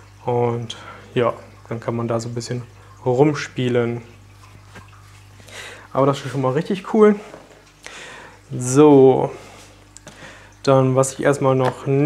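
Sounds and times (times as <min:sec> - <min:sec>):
low steady hum: 0:00.0 - 0:12.0
soft breath: 0:05.4 - 0:05.9, 0:07.2 - 0:08.4, 0:09.3 - 0:10.6
person speaking: 0:05.9 - 0:07.5, 0:08.4 - 0:09.6, 0:10.6 - 0:12.0.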